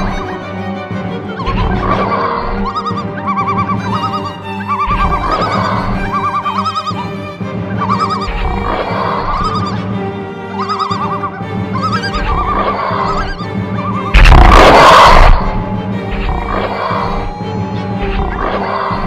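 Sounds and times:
low drone: 0:00.0 - 0:19.0.

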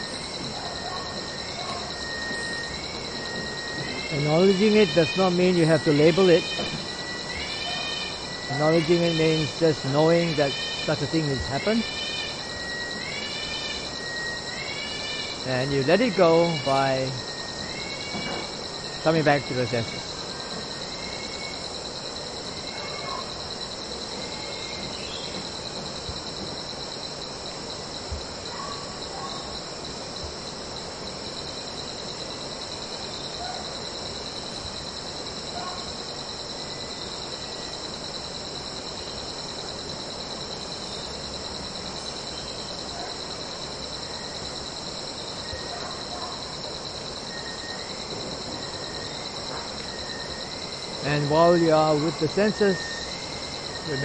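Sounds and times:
faint bird chirps: 0:00.0 - 0:26.0
crickets trilling: 0:00.0 - 0:54.0.

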